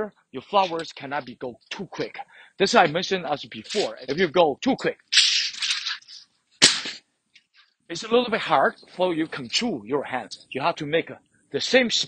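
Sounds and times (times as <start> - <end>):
sword swishing through air: 6.6 - 7.0.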